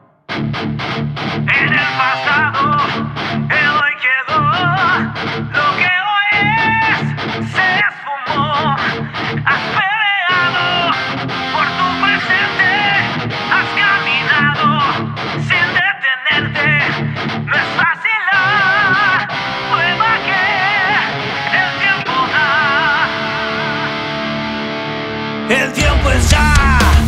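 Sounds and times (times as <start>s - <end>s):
distorted electric guitar riff: 0.0s - 27.0s
rock band playing: 0.3s - 3.5s, 10.4s - 15.5s, 18.4s - 27.0s
lead guitar melody: 0.3s - 3.6s, 8.4s - 15.8s, 18.4s - 27.0s.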